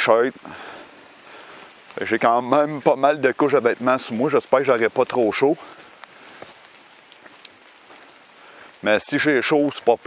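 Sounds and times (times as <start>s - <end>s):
light rain on leaves: 0.0s - 10.0s
raindrop ticks: 0.0s - 10.0s.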